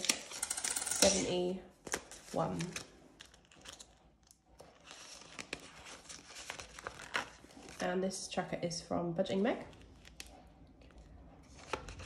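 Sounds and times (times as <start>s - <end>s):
banknotes rustling and crinkling: 1.7s - 7.9s, 9.2s - 12.0s.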